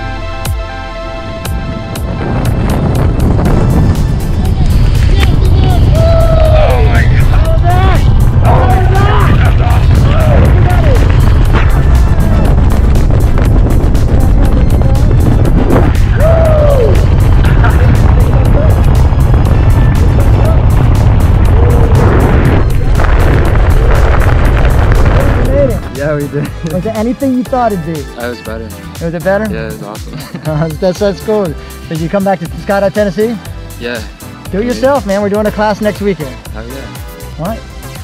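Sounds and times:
music: 0.0 - 38.0
wind buffeting microphone: 1.2 - 27.2
voices: 4.2 - 11.2.

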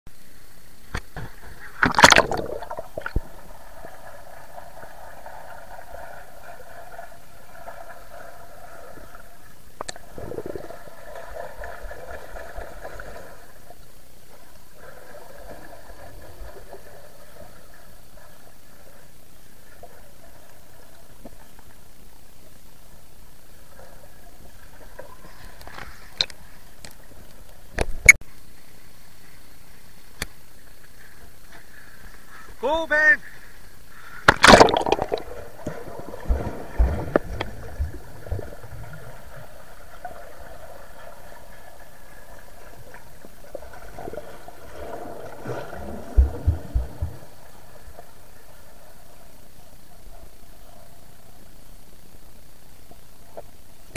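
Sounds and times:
sharp knocks underwater: 0.9 - 3.4, 34.2 - 38.5
muffled underwater noise and bubbling: 0.9 - 28.2, 33.8 - 53.9
splash into water: 1.8 - 3.3, 34.3 - 37.8.

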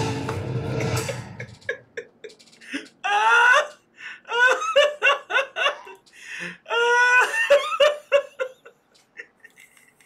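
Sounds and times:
woman laughing: 0.9 - 6.0, 6.6 - 9.6.

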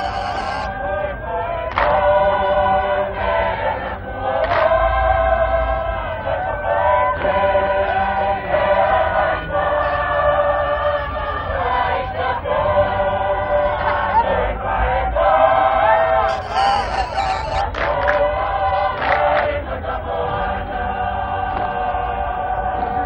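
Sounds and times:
massed chorus singing: 0.0 - 23.0.

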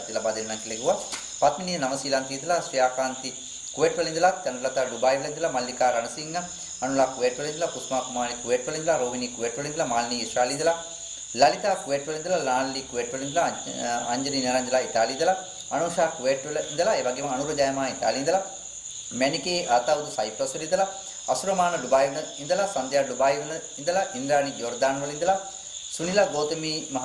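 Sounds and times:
crickets chirping: 0.0 - 27.0
man reading aloud: 0.0 - 27.0.

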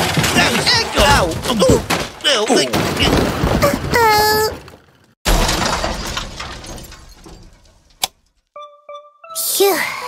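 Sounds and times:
loud crash with shattering: 0.0 - 4.0, 5.2 - 8.0.

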